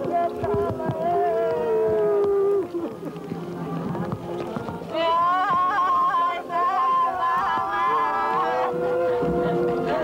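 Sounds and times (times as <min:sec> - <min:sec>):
mourners wailing: 0:07.5 - 0:10.0.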